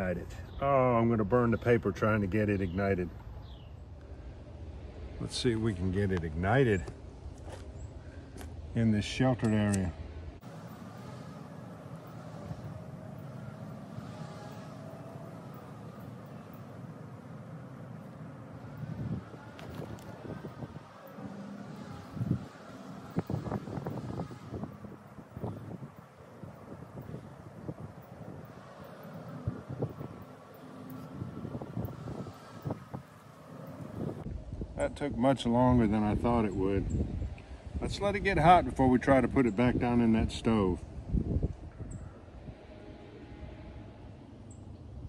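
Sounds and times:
faint droning hum: 0:00.0 - 0:45.0
handling clicks and rustles: 0:09.4 - 0:34.2
wind buffeting microphone: 0:10.4 - 0:45.0.

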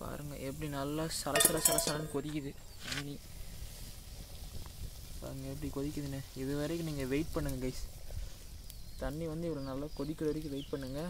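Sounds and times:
water boiling in a pot: 0:00.0 - 0:11.0.

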